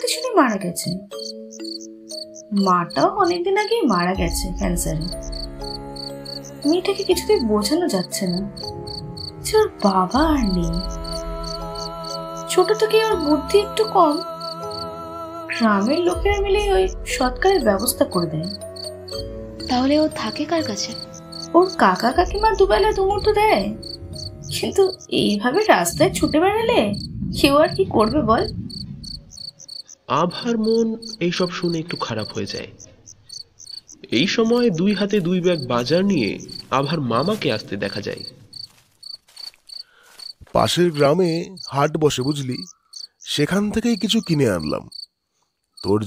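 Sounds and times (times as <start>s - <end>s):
fainter higher chirps: 0.0s - 15.0s, 15.6s - 45.0s
crickets chirping: 0.0s - 46.0s
low music drone: 4.2s - 29.2s.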